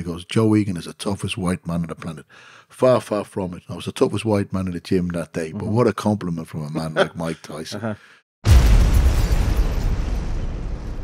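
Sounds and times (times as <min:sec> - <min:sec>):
deep explosion boom: 0:08.4 - 0:11.0.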